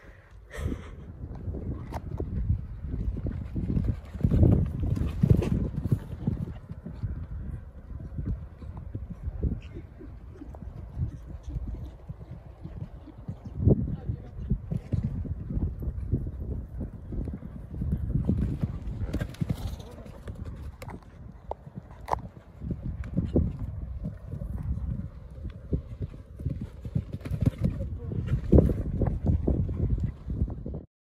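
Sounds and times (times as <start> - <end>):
horse hooves on sand: 1.8 - 30.8.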